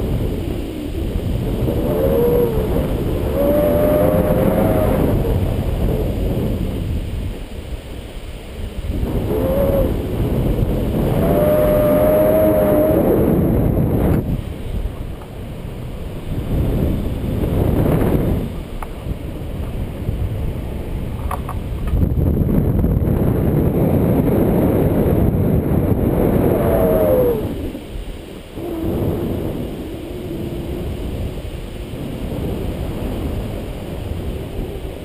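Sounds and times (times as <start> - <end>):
wind buffeting microphone: 0.0 - 35.0
faint wavering whistle: 1.8 - 5.2.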